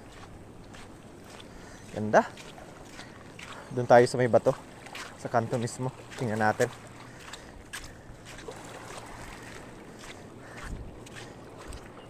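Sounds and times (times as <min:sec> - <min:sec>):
water lapping on beach: 0:00.0 - 0:12.0
wind on microphone: 0:07.6 - 0:12.0.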